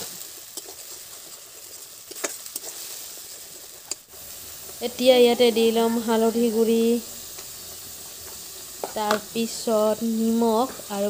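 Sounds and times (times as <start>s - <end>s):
paste sizzling in oil: 0.0s - 11.0s.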